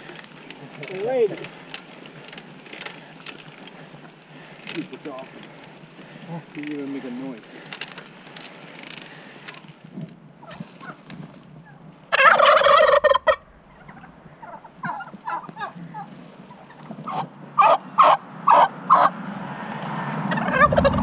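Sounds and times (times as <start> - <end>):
turkeys gobbling: 10.4 - 19.2, 20.3 - 21.0.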